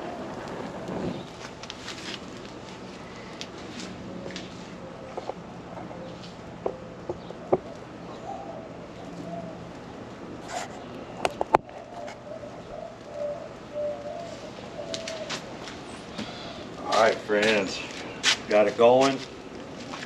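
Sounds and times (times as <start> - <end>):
pine needles crackling in fire: 0.0 - 20.0
bird calling: 4.2 - 9.8, 10.6 - 18.3.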